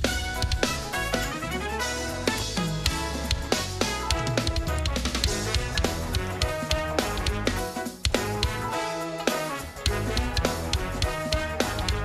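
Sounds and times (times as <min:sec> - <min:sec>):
drum kit playing fast groove: 0:00.0 - 0:12.0
music track with bass and chords: 0:00.0 - 0:12.0.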